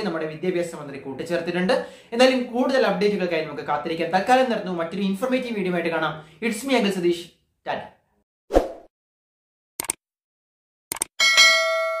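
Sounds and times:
notification bell ringing: 0:11.2 - 0:12.0.

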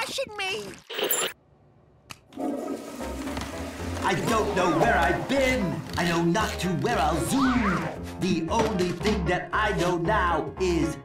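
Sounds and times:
water rushing: 0:02.4 - 0:05.8.

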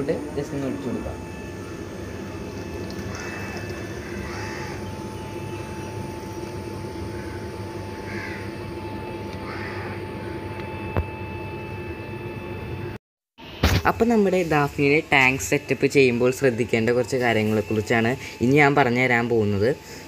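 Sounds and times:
steady background hum: 0:00.0 - 0:20.0
crows cawing: 0:01.6 - 0:05.8, 0:06.7 - 0:10.6.

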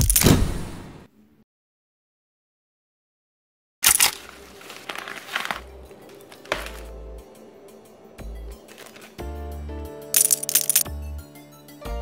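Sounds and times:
plastic bag crinkling: 0:03.8 - 0:07.0, 0:08.6 - 0:09.2
background music with bass pulse: 0:04.4 - 0:12.0.

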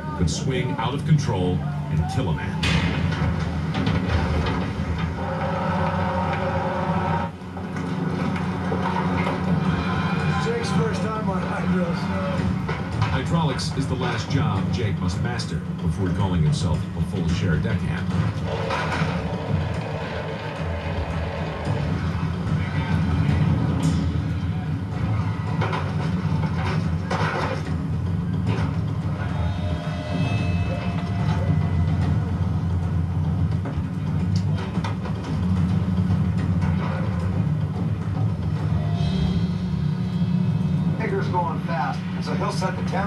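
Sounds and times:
background music: 0:00.0 - 0:43.0
low machinery rumble: 0:00.0 - 0:43.0.

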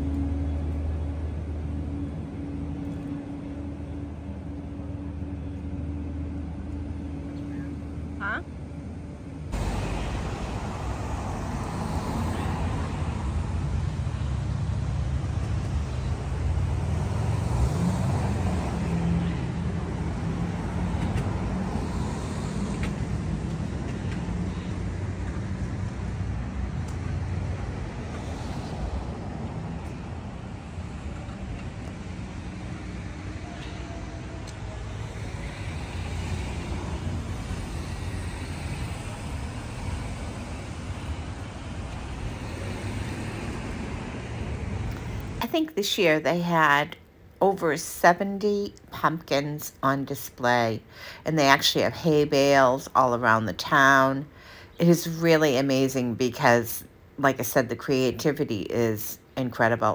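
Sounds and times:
cars passing: 0:00.0 - 0:59.9.

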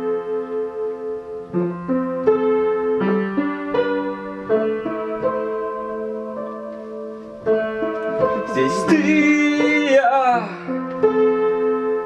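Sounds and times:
detuned upright piano: 0:00.0 - 0:12.0.

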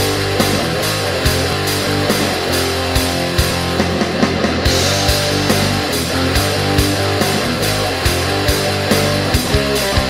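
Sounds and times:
drum beat with cymbals: 0:00.0 - 0:10.0
electric guitar and bass chords: 0:00.0 - 0:10.0.

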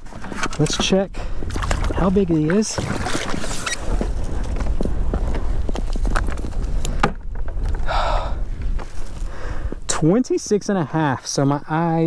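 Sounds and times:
water splashing: 0:00.0 - 0:04.0
knocks and clatter on kayak hull: 0:00.0 - 0:07.9
wind rumble on microphone: 0:00.0 - 0:12.0.

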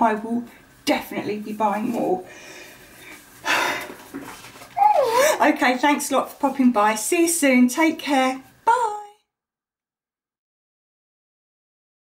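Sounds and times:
voice: 0:00.0 - 0:02.3, 0:04.8 - 0:09.2.

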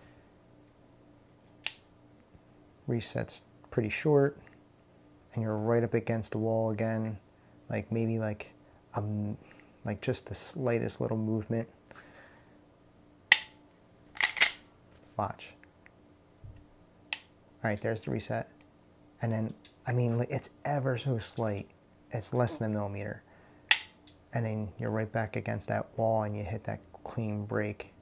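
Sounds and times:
pistol trigger click: 0:13.3 - 0:13.5, 0:23.7 - 0:23.9.

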